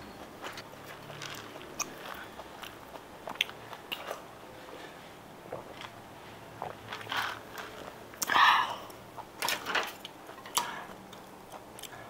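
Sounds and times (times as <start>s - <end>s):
person chewing food: 0.2s - 12.0s.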